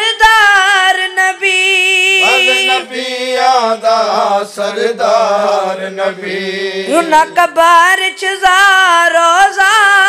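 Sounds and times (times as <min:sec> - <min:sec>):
young male voice chanting: 0:01.6 - 0:04.8, 0:06.4 - 0:08.8.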